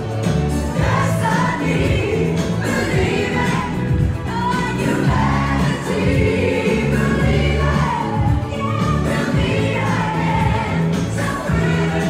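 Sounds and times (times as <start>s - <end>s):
group singing along: 0.0s - 12.0s
party music: 0.0s - 12.0s.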